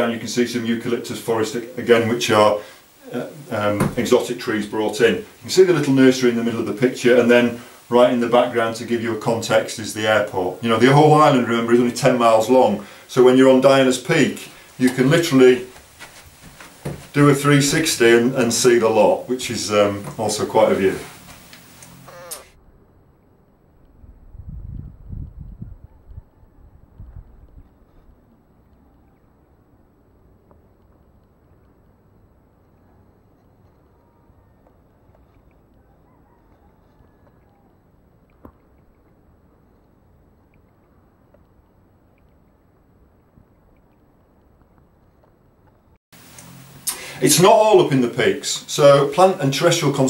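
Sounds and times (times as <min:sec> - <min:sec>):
wind buffeting microphone: 0:23.9 - 0:28.2.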